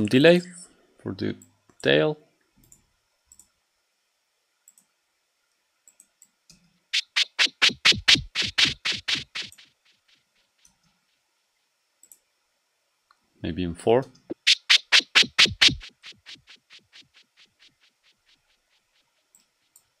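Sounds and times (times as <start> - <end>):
stuttering white noise synth bursts: 7.0 - 10.1, 14.3 - 19.1.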